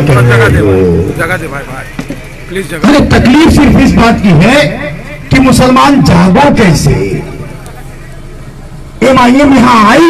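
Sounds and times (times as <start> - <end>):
man speaking over loudspeakers: 0.0 - 7.6, 9.0 - 10.0.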